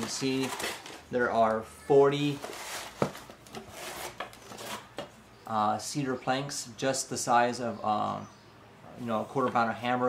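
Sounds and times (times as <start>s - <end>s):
cardboard scraping: 0.0s - 1.1s, 2.3s - 5.0s.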